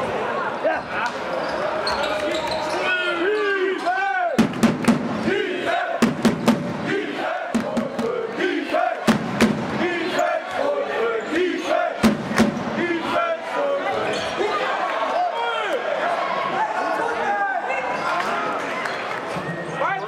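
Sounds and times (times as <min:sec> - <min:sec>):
players and spectators voices: 0:00.0 - 0:20.0.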